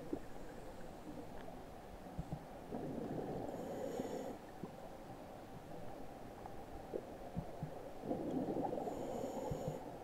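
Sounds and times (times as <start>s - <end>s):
diver breathing through regulator: 3.4s - 4.4s, 8.8s - 9.9s.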